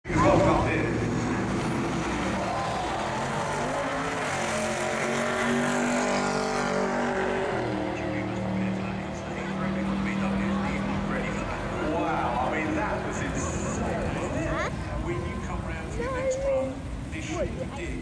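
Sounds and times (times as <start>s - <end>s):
spectator voices: 10.6s - 18.0s.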